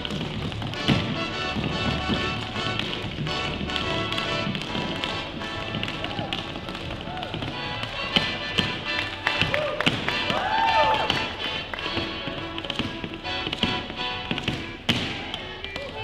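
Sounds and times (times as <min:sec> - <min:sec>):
music: 0:00.0 - 0:16.0
tap shoes on wooden floor: 0:00.0 - 0:16.0.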